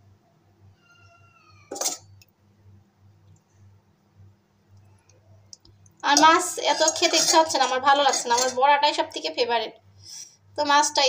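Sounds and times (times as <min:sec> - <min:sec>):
cat meowing: 0:00.8 - 0:01.8
spoon scraping metal pot: 0:01.7 - 0:02.1, 0:06.1 - 0:08.8.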